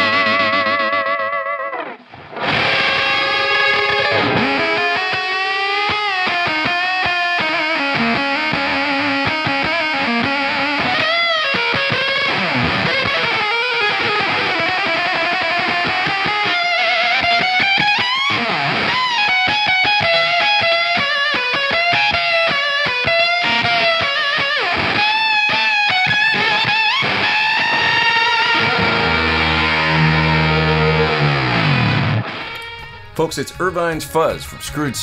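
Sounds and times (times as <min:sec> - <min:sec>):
fuzz electric guitar notes: 0:00.0 - 0:35.0.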